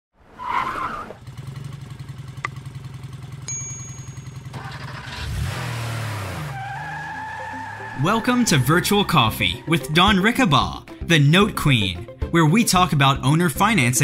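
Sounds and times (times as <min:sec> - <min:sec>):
cartoon motorcycle engine: 0:01.1 - 0:10.7
click: 0:02.4 - 0:02.6
short high ting: 0:03.5 - 0:04.6.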